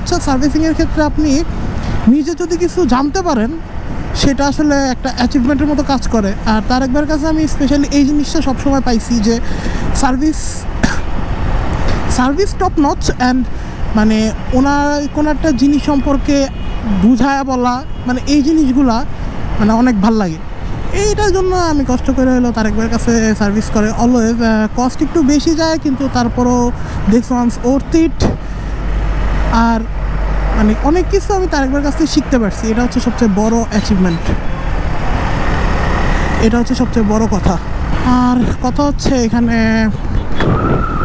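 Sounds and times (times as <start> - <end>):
bus running alongside: 0.0 - 41.0
man speaking: 36.4 - 40.0
wind noise: 37.7 - 41.0
wind rushing: 40.0 - 41.0.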